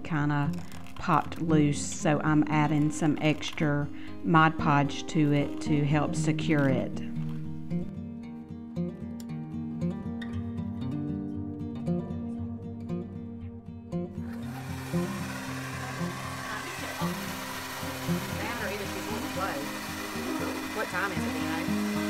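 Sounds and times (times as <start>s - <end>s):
soft guitar music: 0.0s - 22.0s
hair dryer blowing: 14.2s - 22.0s.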